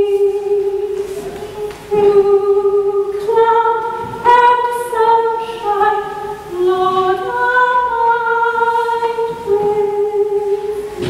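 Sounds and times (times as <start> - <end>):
woman singing slow melody: 0.0 - 11.0.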